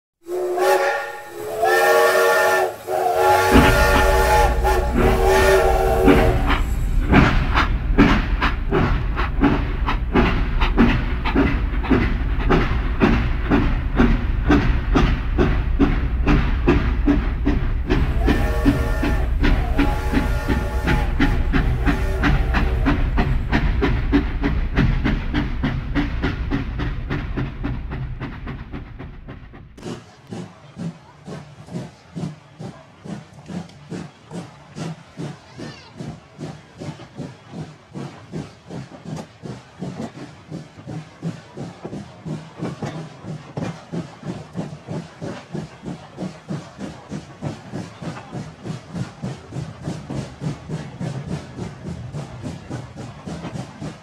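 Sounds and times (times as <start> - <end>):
steam locomotive whistle: 0.2 - 7.2, 17.9 - 23.5
steam locomotive chuffing: 0.2 - 54.0.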